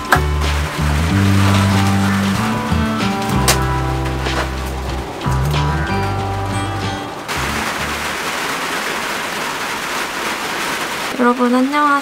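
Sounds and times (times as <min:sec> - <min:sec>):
background music: 0:00.0 - 0:08.1
rain falling on a van: 0:00.0 - 0:12.0.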